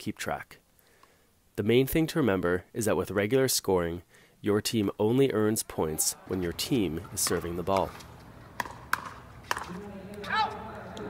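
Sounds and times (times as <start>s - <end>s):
paddles striking plastic ball: 7.2s - 9.8s.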